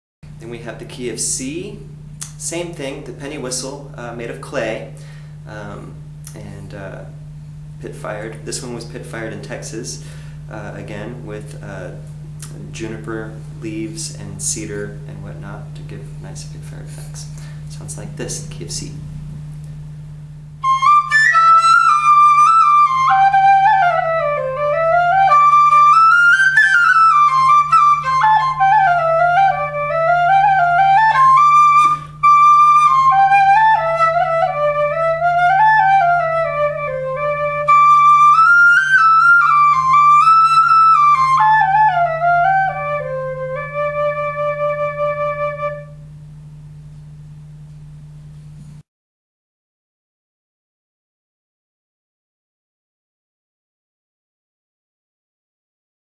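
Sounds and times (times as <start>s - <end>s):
steady low hum: 0.2s - 48.8s
clay pennywhistle melody: 20.6s - 46.0s.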